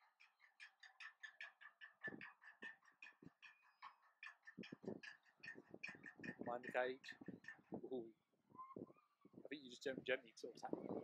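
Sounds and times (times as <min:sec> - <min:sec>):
rapid high bird calls: 0:00.0 - 0:06.5.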